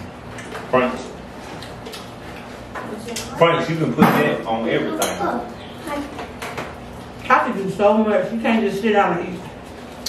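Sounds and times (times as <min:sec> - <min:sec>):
light clicks and taps of eating: 0:00.3 - 0:03.3.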